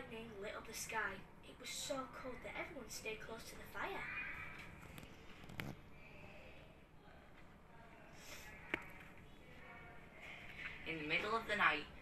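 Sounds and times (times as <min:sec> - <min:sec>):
child reading aloud: 0:00.0 - 0:04.6.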